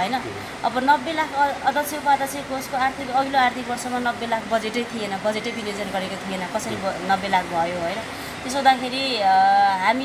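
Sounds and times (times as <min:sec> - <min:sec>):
faint background noise: 0:00.0 - 0:10.0
woman talking: 0:00.0 - 0:10.0.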